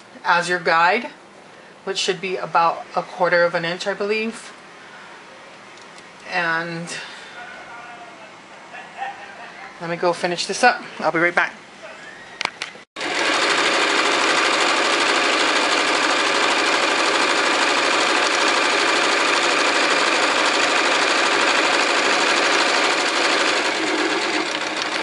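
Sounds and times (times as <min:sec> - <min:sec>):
sewing machine running: 0:13.0 - 0:25.0.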